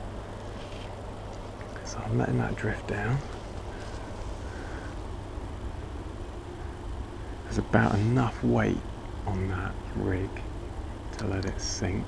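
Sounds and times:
low outdoor rumble: 0.0s - 12.0s.

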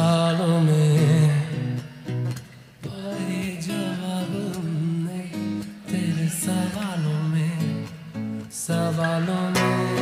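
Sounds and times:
man singing: 0.0s - 2.1s, 2.8s - 10.0s
acoustic guitar plucked: 0.0s - 10.0s.

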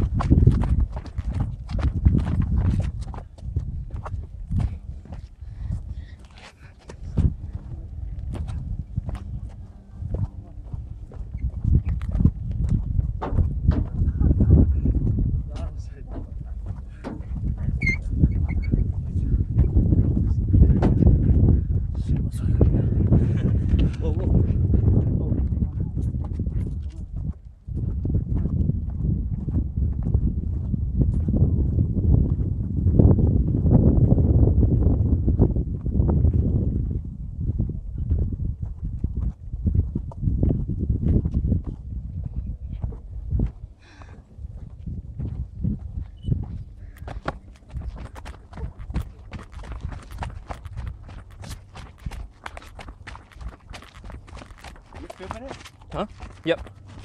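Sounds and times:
running footsteps on wooden ties: 0.0s - 37.0s, 38.1s - 57.0s
loud low rumble: 3.5s - 38.8s.

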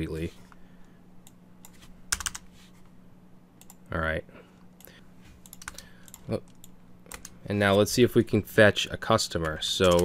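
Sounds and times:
faint electrical hum: 0.0s - 10.0s
computer keyboard key presses: 2.1s - 2.4s.

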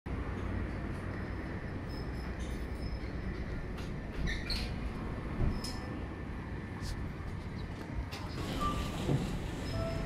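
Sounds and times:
street traffic rumble: 0.1s - 10.0s.

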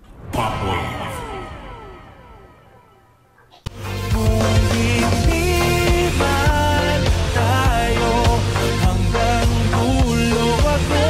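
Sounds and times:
electronic tones sliding downward: 0.2s - 3.5s.

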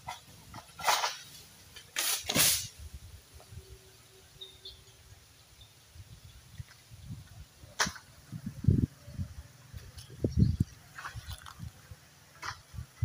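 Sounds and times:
sharp crack: 0.8s - 2.8s.

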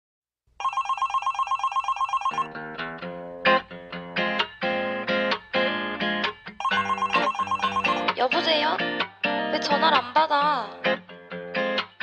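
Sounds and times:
telephone ringing: 0.6s - 2.5s, 6.6s - 8.2s
guitar chords strummed: 2.5s - 9.8s.

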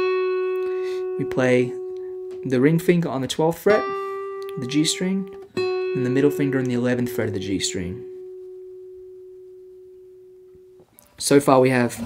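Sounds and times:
acoustic guitar note ringing: 0.0s - 10.9s.

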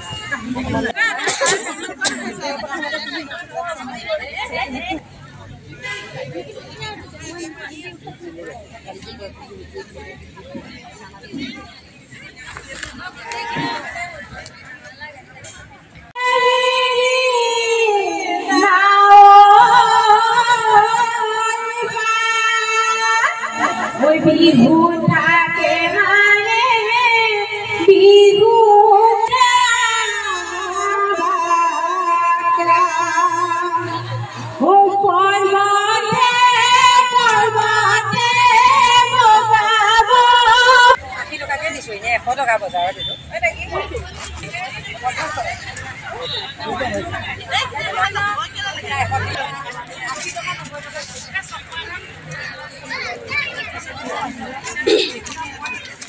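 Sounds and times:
background crowd chatter: 0.0s - 56.0s.

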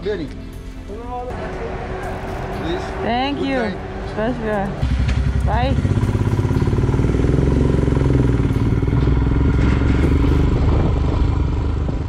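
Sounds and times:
motorbike engine accelerating: 1.3s - 12.0s.

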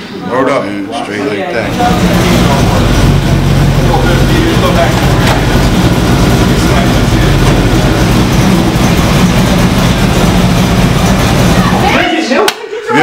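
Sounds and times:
voices: 0.0s - 13.0s
car engine idling: 1.6s - 12.1s.

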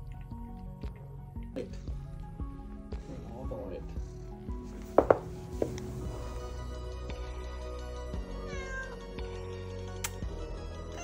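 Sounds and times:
mellow background music: 0.0s - 11.0s.

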